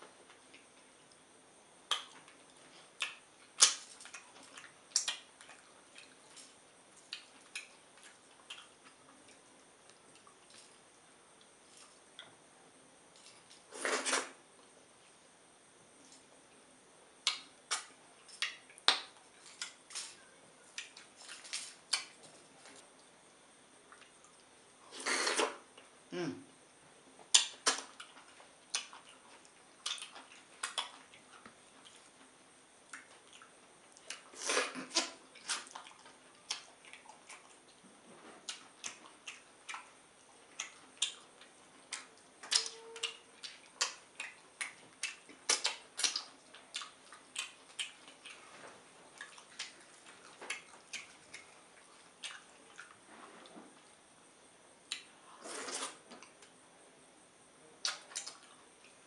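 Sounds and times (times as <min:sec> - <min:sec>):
wet chewing mouth sounds: 0:01.9 - 0:10.7, 0:27.3 - 0:32.3, 0:32.9 - 0:37.8, 0:38.4 - 0:53.0.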